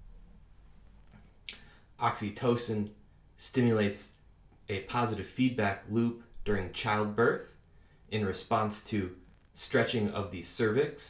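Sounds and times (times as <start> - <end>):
faint low hum: 0.0 - 11.0
mouth click: 1.4 - 1.7.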